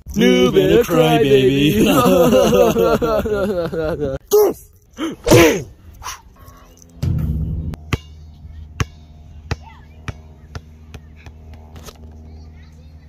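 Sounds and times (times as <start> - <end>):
steady low hum: 0.0 - 13.0
basketball bouncing on court: 8.8 - 11.7.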